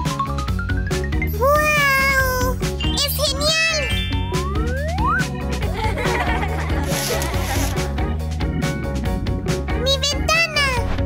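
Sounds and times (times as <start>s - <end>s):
upbeat background music: 0.0s - 11.0s.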